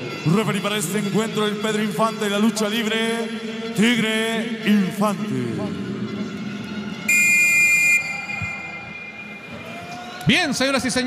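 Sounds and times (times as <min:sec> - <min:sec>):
arena crowd noise: 0:00.0 - 0:11.0
loud horn blast: 0:07.1 - 0:08.8.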